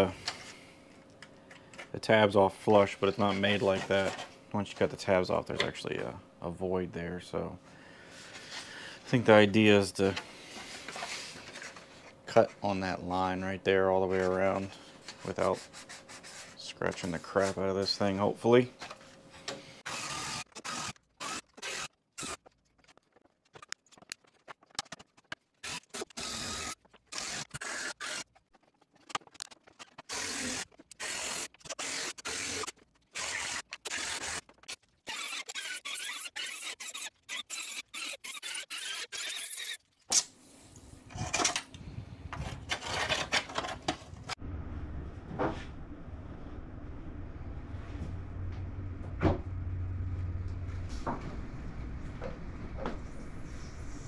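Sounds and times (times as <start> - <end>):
rotary tool cutting plastic: 19.8 - 40.3
steady low hum: 43.9 - 54.0.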